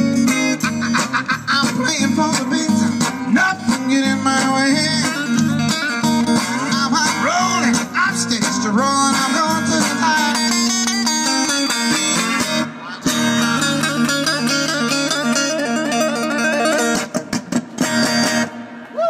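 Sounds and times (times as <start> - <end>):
man singing: 0.0 - 10.8
acoustic guitar strumming: 0.0 - 18.9.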